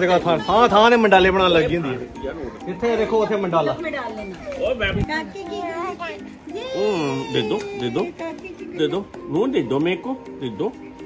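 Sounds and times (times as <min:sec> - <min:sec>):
adults talking: 0:00.0 - 0:11.0.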